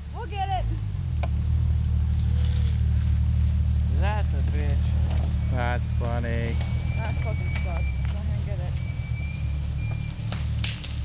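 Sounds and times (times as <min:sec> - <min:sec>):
engine rumbling under load: 0:00.0 - 0:11.0.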